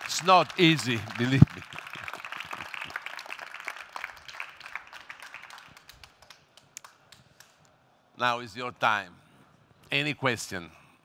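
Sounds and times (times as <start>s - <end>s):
audience applauding: 0.0s - 7.2s.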